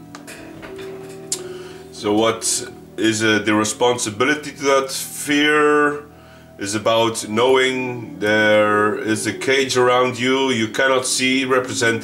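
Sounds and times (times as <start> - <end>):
soft guitar music: 0.0 - 12.0.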